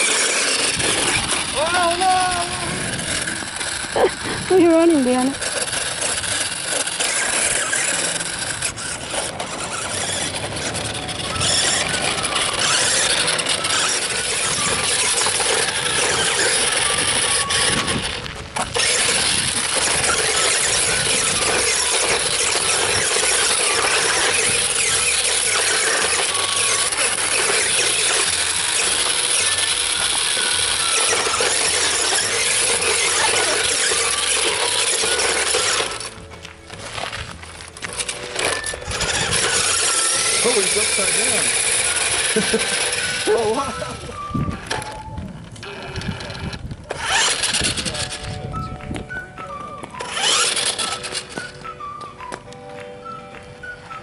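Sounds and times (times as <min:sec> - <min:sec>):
toy vehicle electric motor whining: 0:00.0 - 0:54.0.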